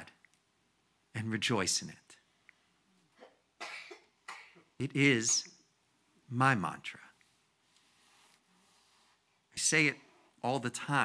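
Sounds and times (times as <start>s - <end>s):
person coughing: 3.2s - 4.7s.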